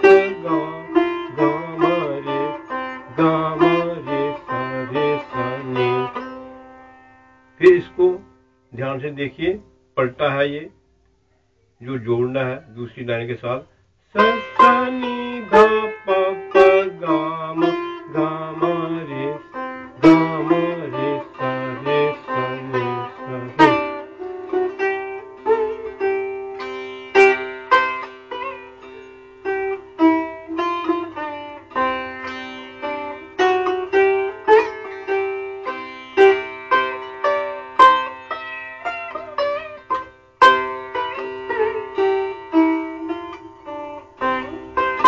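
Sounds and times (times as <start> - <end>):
sitar playing: 0.0 - 8.7, 14.2 - 45.0.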